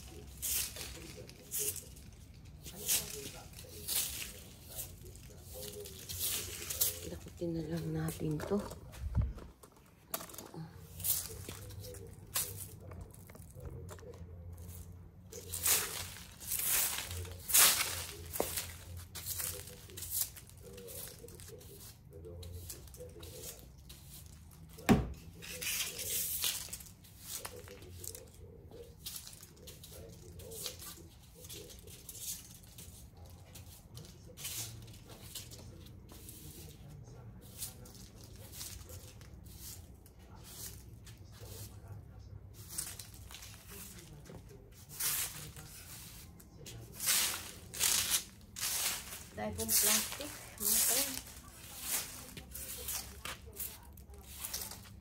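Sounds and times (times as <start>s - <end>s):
rustling and brushing: 0.0s - 55.0s.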